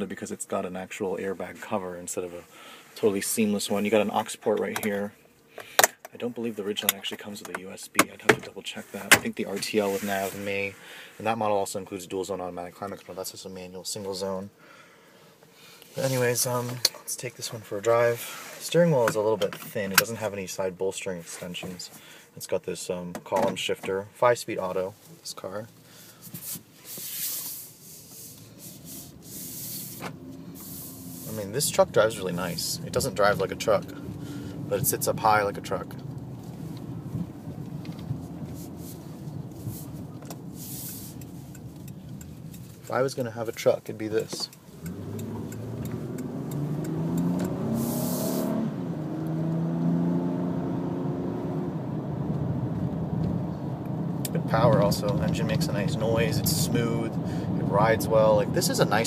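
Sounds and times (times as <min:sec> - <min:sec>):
road noise hiss: 0:02.2 - 0:04.0, 0:08.7 - 0:11.4, 0:14.5 - 0:19.0, 0:24.8 - 0:51.8, 0:53.4 - 0:59.0
car engine hum: 0:25.7 - 0:59.0
brief hiss: 0:26.0 - 0:31.5, 0:39.6 - 0:41.3, 0:47.8 - 0:48.6.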